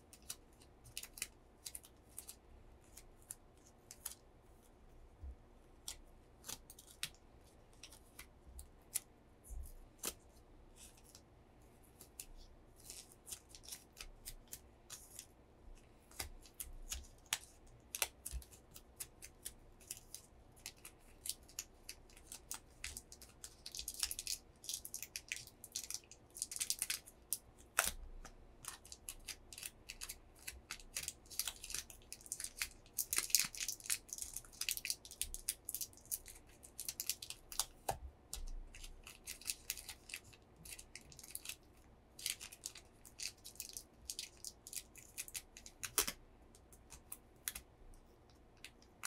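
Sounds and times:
fingers crackling small thin item: 0:00.0 - 0:04.2, 0:05.8 - 0:11.2, 0:11.8 - 0:49.0.

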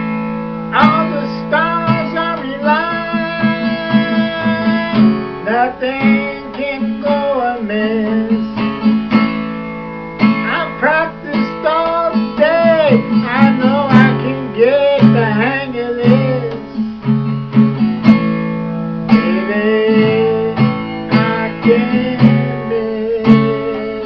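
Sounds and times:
strummed acoustic guitar: 0:00.0 - 0:24.0
man singing blues: 0:00.7 - 0:09.4, 0:10.2 - 0:17.4, 0:19.1 - 0:24.0.

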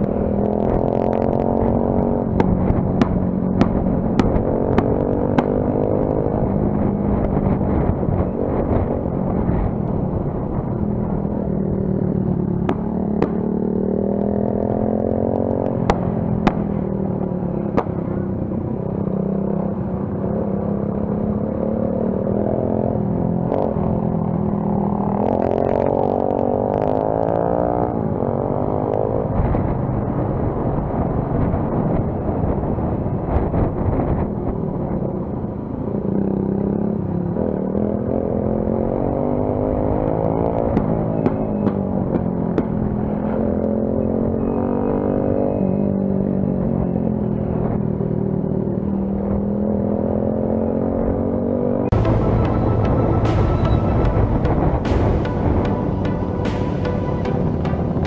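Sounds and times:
motorcycle engine accelerating: 0:00.0 - 0:58.0.

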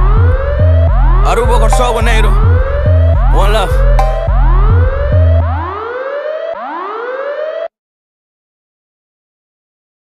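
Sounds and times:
siren-like synthesizer sweeps: 0:00.2 - 0:07.6.

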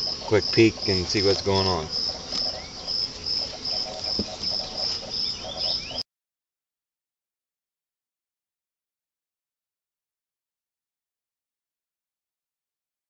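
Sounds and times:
insects chirping: 0:00.0 - 0:06.0.

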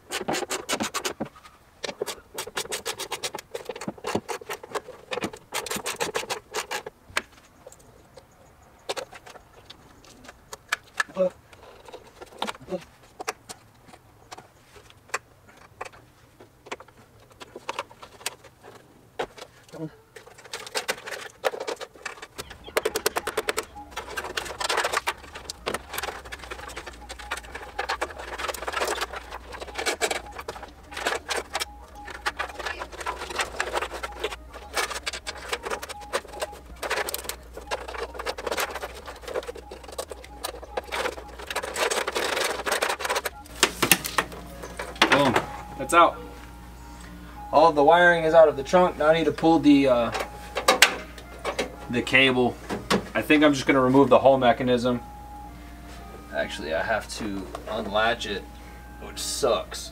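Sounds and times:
plastic clips clicking and rattling: 0:01.8 - 0:45.4
steady low hum: 0:22.0 - 0:59.9.

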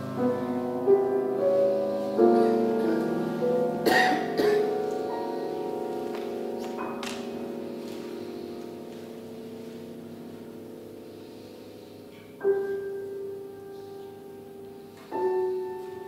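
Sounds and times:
soft piano chords: 0:00.0 - 0:16.0.

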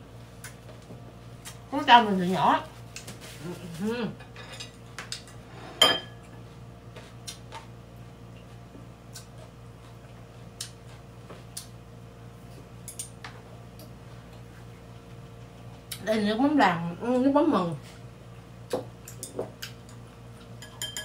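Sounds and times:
chopsticks clinking on ceramic: 0:20.6 - 0:21.0.

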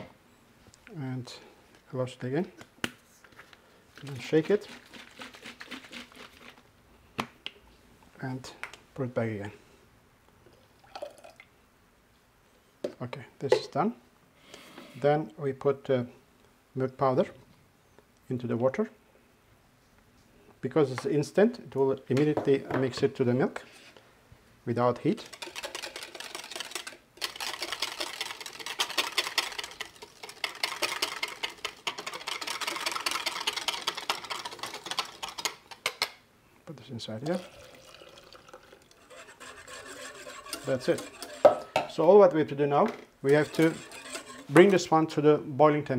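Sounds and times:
whisk rattling in plastic jug: 0:04.0 - 0:06.6, 0:24.9 - 0:36.1, 0:37.4 - 0:41.9, 0:43.3 - 0:44.8.

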